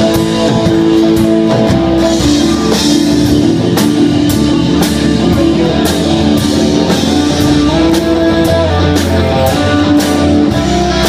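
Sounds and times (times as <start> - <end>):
drum kit with cymbals: 0.0 - 11.0
electric and acoustic guitars: 0.0 - 11.0.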